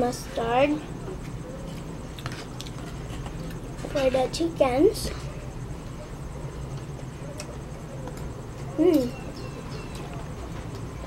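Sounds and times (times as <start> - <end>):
girl speaking: 0.0 - 0.9, 3.9 - 5.3, 8.8 - 9.2
low hum of room noise: 0.0 - 11.0.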